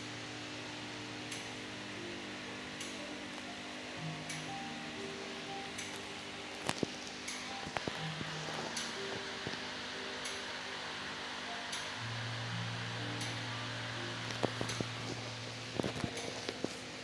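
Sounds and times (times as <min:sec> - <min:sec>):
faint background music: 0:00.0 - 0:17.0
ventilation hiss: 0:00.0 - 0:17.0.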